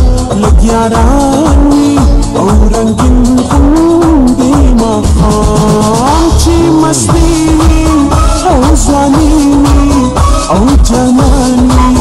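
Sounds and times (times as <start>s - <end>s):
deep steady beat: 0.0s - 12.0s.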